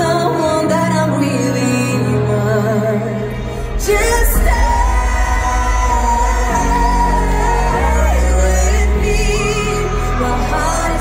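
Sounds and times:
live pop band: 0.0 - 11.0
heavy deep bass: 3.8 - 11.0.

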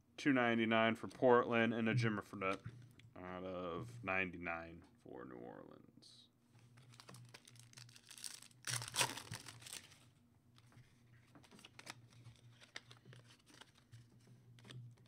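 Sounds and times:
cards rustling and clicking: 6.7 - 15.0
foil wrapper tearing and crinkling: 6.8 - 10.0, 11.5 - 14.0.

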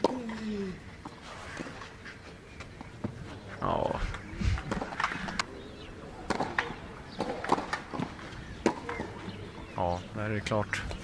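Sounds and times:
racket hitting tennis ball: 6.2 - 9.2
tennis ball bouncing: 6.2 - 9.2.

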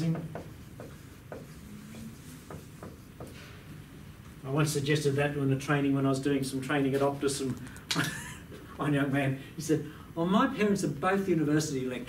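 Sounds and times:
marker scratching on whiteboard: 0.1 - 3.4.

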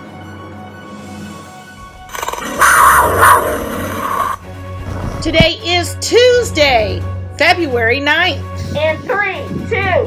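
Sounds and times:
background music: 0.0 - 10.0
big cat roaring: 2.0 - 5.3.

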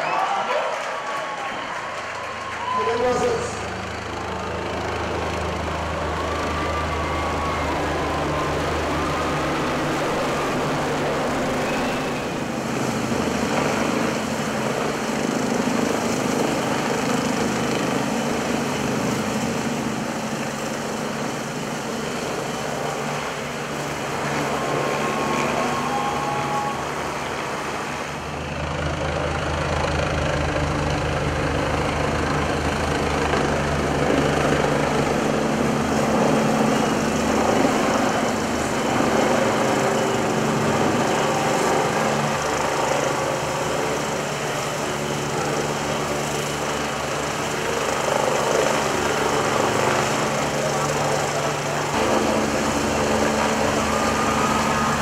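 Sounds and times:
helicopter hovering overhead: 0.0 - 55.0.

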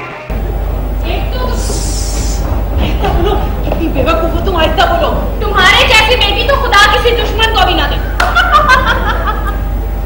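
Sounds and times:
woman laughing: 8.0 - 9.7.

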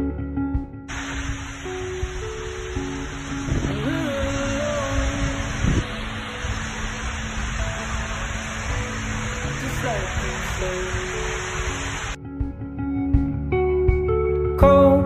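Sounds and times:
background music: 0.0 - 15.0
waterfall roaring: 0.9 - 12.2.

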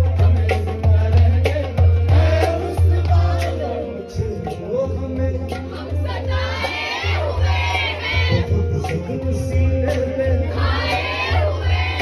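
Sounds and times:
man singing folk song: 0.0 - 5.8, 8.3 - 10.6
harmonium drone: 0.0 - 12.0.

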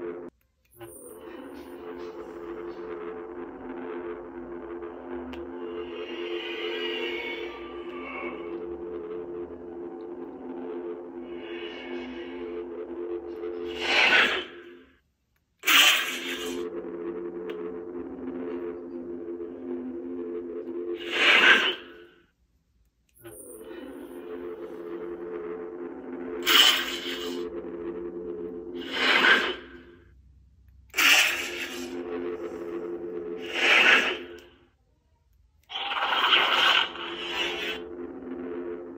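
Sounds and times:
lightsaber power-down: 0.0 - 14.9, 15.6 - 22.1, 23.2 - 30.0, 30.9 - 34.6, 35.7 - 38.9
lightsaber hum: 0.0 - 22.5, 23.1 - 38.9
lightsaber power-up: 0.7 - 14.9, 15.6 - 22.1, 23.2 - 30.0, 30.9 - 34.6, 35.7 - 38.9.

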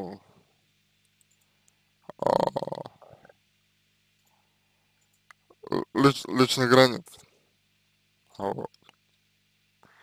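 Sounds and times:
faint low steady hum: 0.0 - 10.0
man's hesitation sound: 2.0 - 3.3, 5.5 - 7.2.

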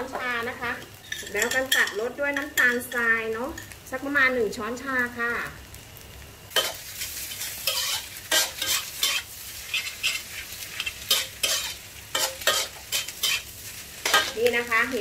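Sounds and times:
light sizzle: 0.0 - 15.0
metal spatula scraping a wok: 1.0 - 2.0, 6.5 - 15.0.

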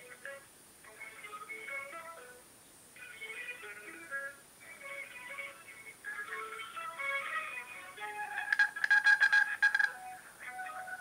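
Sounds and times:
stuttering electronic hold tone: 8.6 - 10.0.

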